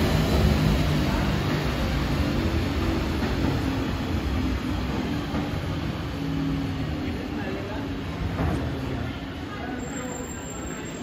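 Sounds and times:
garbage truck diesel engine: 0.0s - 7.4s.

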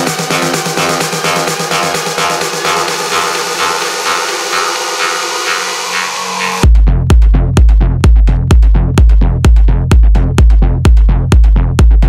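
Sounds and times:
sustained synth chords: 0.0s - 6.7s
hissing noise sweep: 0.8s - 6.6s.

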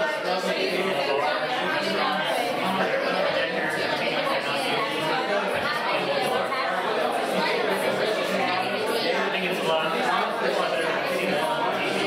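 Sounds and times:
hubbub of chatter: 0.0s - 12.0s.

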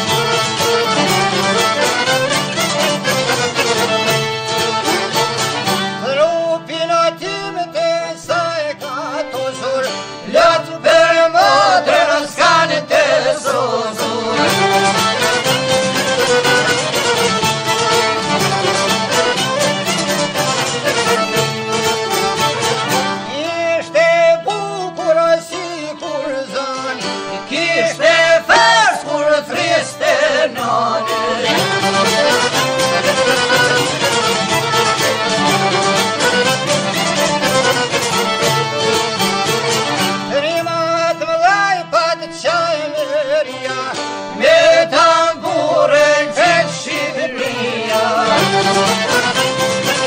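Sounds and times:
folk song with steady beat: 0.0s - 50.0s.

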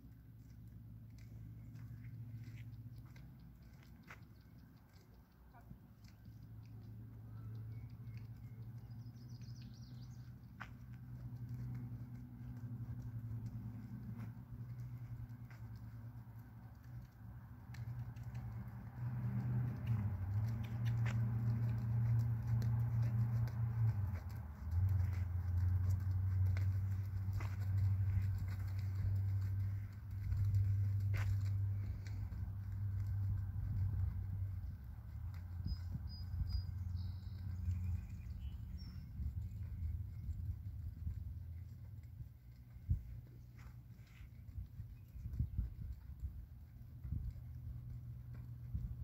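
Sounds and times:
hooves on sand: 0.0s - 49.0s
steady low hum: 0.0s - 49.0s.

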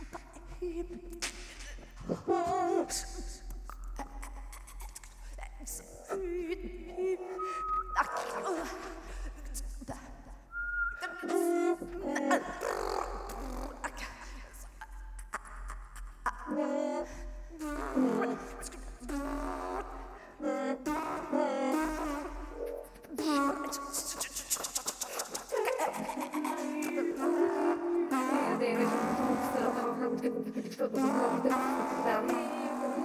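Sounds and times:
experimental improvised vocals: 0.0s - 33.0s
woman making breathy vocal clicks: 23.0s - 27.1s.

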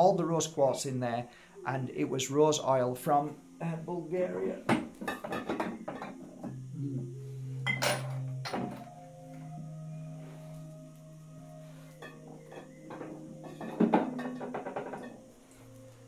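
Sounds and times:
drone-like background music: 5.7s - 16.0s.

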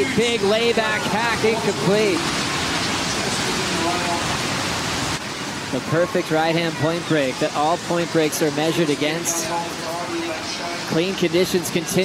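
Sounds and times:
ocean surf waves breaking: 0.0s - 12.0s.

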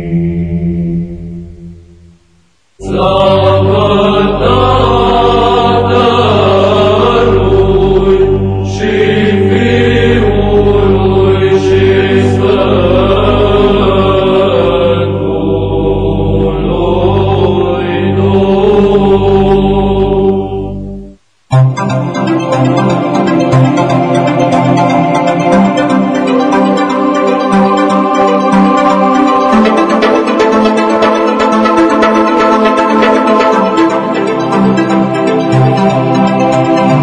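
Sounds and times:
choir chanting: 0.0s - 1.7s, 2.8s - 21.0s, 22.1s - 37.0s
held vocal drone: 0.0s - 37.0s.

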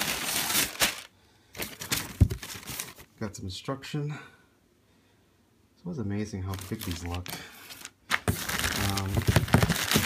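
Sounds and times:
packing paper rustling: 0.0s - 3.1s, 6.5s - 10.0s
sharp paper crackle: 0.0s - 3.1s, 6.5s - 10.0s.

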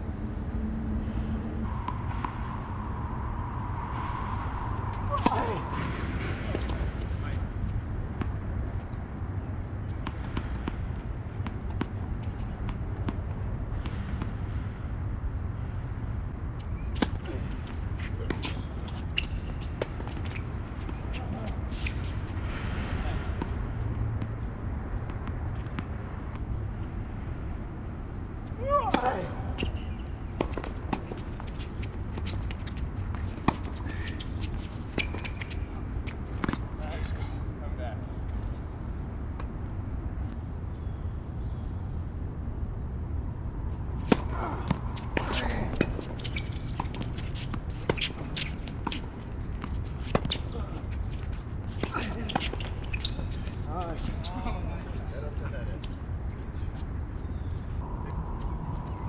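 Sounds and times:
steady low rumble: 0.0s - 33.8s, 53.4s - 59.0s
tennis balls struck by rackets: 28.7s - 37.0s.

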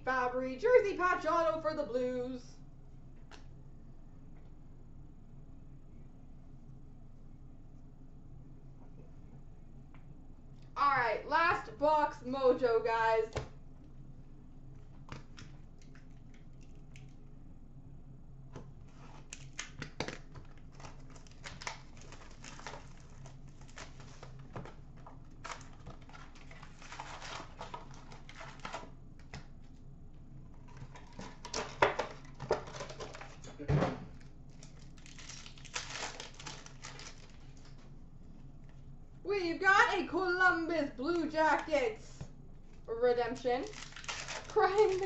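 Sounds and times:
card pack wrappers tearing: 19.0s - 28.9s, 34.6s - 37.8s, 43.3s - 45.0s.

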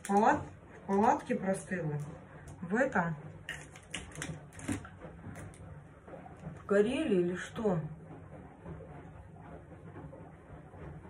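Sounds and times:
small objects clicking and tapping: 0.0s - 2.6s, 3.5s - 4.8s.

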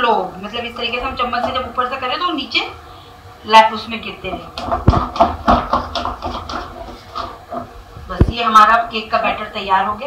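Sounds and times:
dull knocks: 4.5s - 7.7s.

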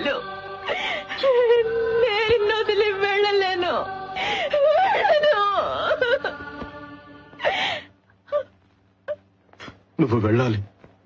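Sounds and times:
woman crying: 0.0s - 2.1s, 4.2s - 6.4s, 7.4s - 9.3s.

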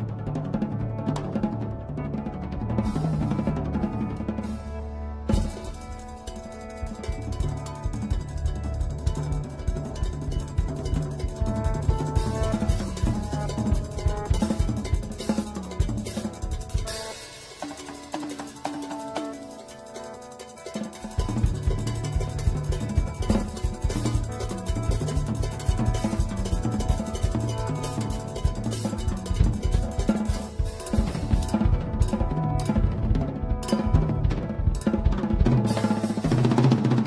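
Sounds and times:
bass guitar notes: 0.0s - 16.8s
drum kit played busily: 0.0s - 37.0s
cymbals: 2.8s - 37.0s.

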